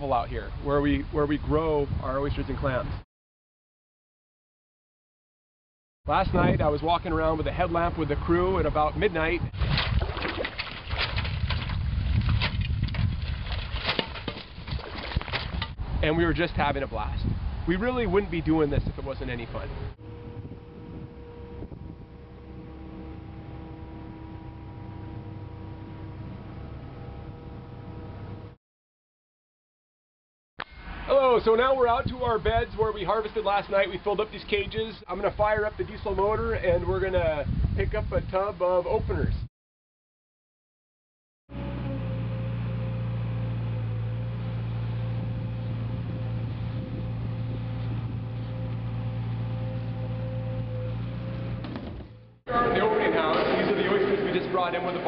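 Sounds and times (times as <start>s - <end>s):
boat engine humming: 19.6s - 28.6s, 41.5s - 55.0s
thin steady whine: 19.8s - 28.6s.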